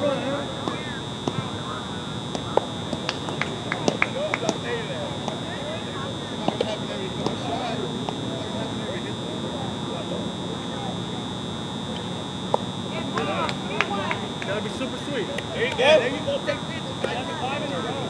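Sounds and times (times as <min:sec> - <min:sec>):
high-pitched whine: 0:00.0 - 0:18.0
players shouting and chattering: 0:00.0 - 0:18.0.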